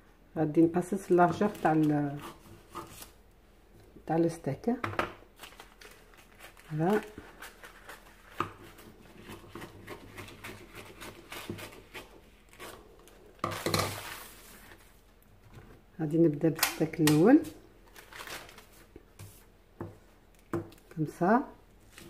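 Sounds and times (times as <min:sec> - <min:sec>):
paper crinkling: 0:01.2 - 0:03.2, 0:05.4 - 0:15.1, 0:17.8 - 0:19.5
paper rustling: 0:01.2 - 0:03.2, 0:05.4 - 0:15.1, 0:17.9 - 0:19.5.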